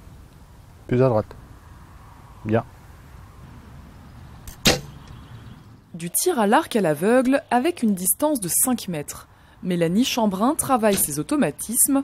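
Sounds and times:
arrow striking straw target: 0:04.5 - 0:05.0, 0:10.9 - 0:11.2.

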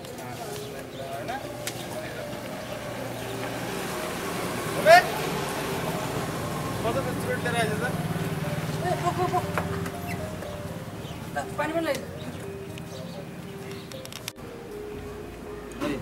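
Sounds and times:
voices: 0:00.0 - 0:14.2
traffic engine hum: 0:00.0 - 0:16.0.

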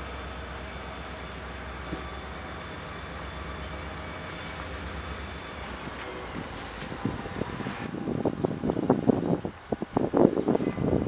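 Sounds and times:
diesel locomotive engine rumble: 0:00.0 - 0:11.0
wind buffeting microphone: 0:06.2 - 0:11.0.

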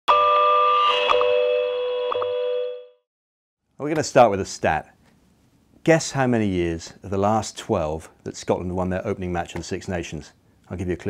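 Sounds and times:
man speaking: 0:03.8 - 0:05.0, 0:05.8 - 0:11.0.

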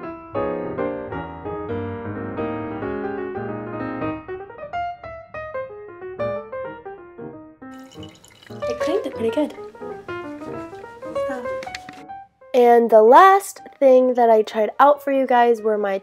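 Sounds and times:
piano music: 0:00.0 - 0:16.0
running tap hissing: 0:07.8 - 0:10.4.

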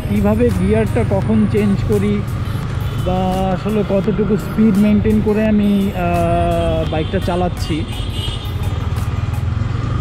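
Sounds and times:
motorcycle engine running: 0:00.0 - 0:06.8.

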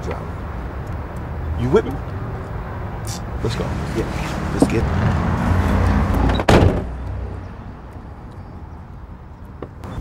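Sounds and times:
van door slamming: 0:06.2 - 0:06.9.

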